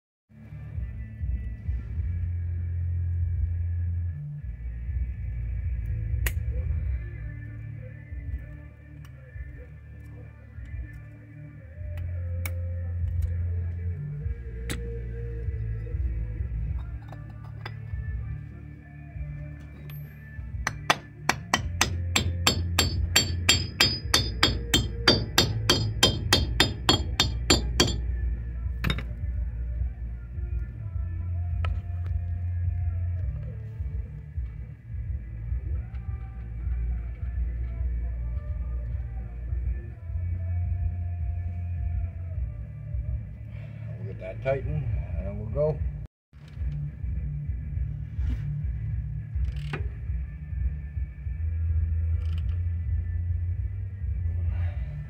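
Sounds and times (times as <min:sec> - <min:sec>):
background music: 0:00.3 - 0:55.0
hammer tapping metal cap: 0:20.7 - 0:28.1.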